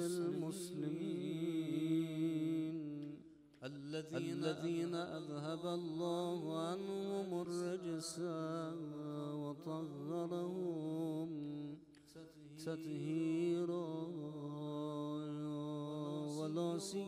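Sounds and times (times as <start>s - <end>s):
man chanting melodic recitation: 0.0s - 11.8s, 12.4s - 17.0s.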